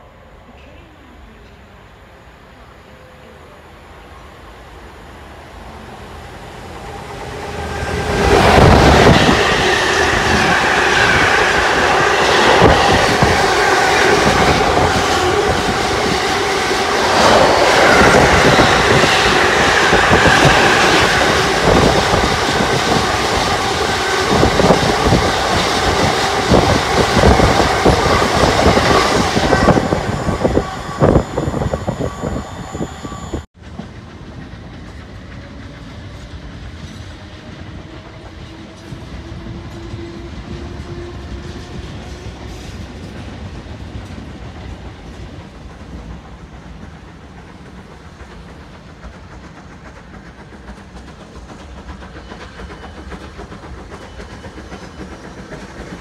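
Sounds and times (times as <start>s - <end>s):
diesel locomotive passing: 0.0s - 56.0s
electric train passing: 0.0s - 56.0s.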